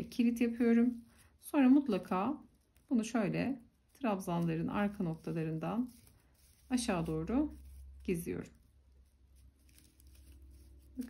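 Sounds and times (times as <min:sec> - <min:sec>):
low steady hum: 0:00.0 - 0:11.0
paper yarn rustling: 0:00.0 - 0:11.0.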